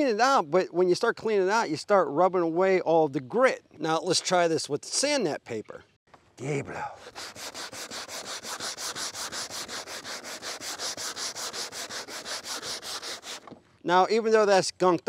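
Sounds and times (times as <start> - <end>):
sanding wood by hand: 7.0 - 13.5.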